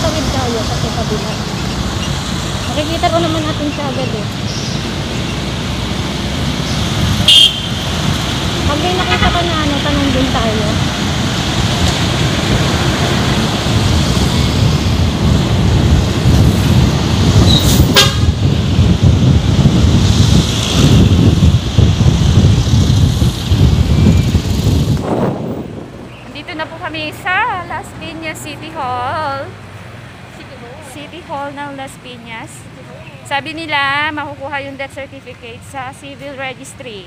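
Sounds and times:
motorcycle engine and road noise: 0:00.0 - 0:37.0
wind buffeting microphone: 0:02.7 - 0:28.6
horn toot: 0:07.2 - 0:08.0, 0:08.8 - 0:09.9, 0:17.5 - 0:18.4.

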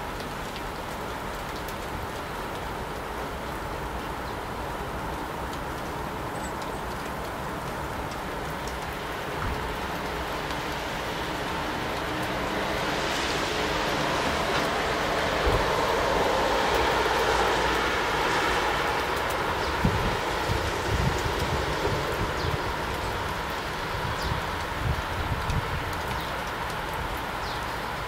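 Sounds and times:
small birds chirping: 0:27.4 - 0:28.0.

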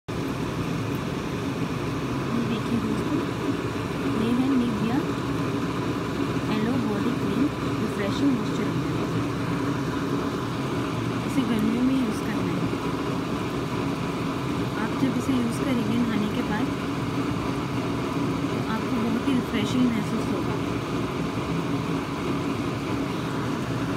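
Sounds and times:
steady background noise: 0:00.1 - 0:23.9.

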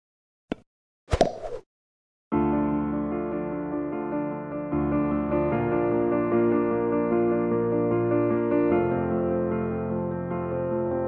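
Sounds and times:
tennis ball hitting racquet: 0:01.1 - 0:01.6.

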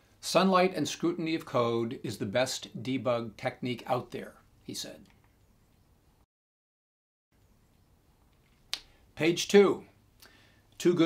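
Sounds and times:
mouth click: 0:08.7 - 0:08.9.

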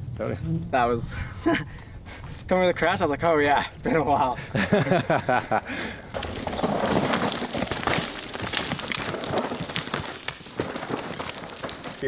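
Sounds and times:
bike tyres crunching on dirt: 0:02.2 - 0:12.0
rush of gravel: 0:04.6 - 0:12.0
bike clicking and knocking on rocks: 0:05.1 - 0:12.0.

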